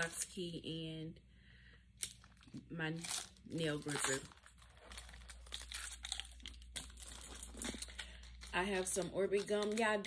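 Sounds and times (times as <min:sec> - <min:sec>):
rustling and crinkling: 0:02.2 - 0:10.0.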